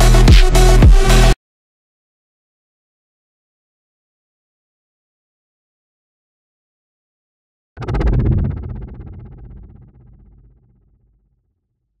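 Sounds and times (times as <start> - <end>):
deep synthesized impact hit: 7.8 - 11.0.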